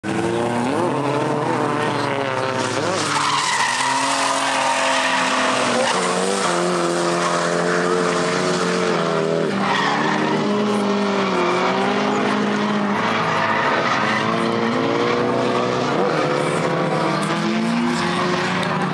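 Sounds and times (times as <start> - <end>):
car engine revving hard: 0.0 - 18.9
tyres skidding and squealing: 0.0 - 18.9.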